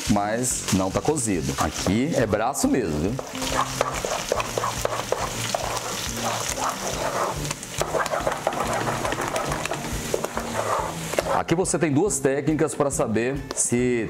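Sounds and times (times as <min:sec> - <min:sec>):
wooden spoon scraping pot: 0:03.2 - 0:11.5.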